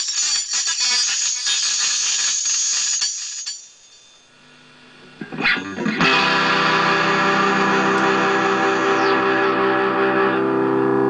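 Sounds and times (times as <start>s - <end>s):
distorted electric guitar strumming: 5.0s - 11.0s
faint low guitar notes: 5.1s - 11.0s
guitar pitch sweep into chord: 5.2s - 11.0s.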